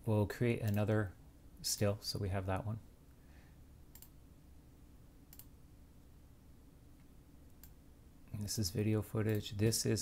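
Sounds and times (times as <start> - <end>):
computer mouse clicks: 3.9 - 4.2, 5.3 - 5.6, 7.0 - 7.8, 9.2 - 9.5.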